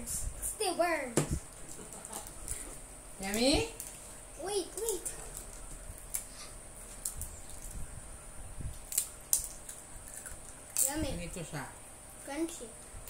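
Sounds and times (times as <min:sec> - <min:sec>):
peanut brittle crunching: 0:08.7 - 0:11.0.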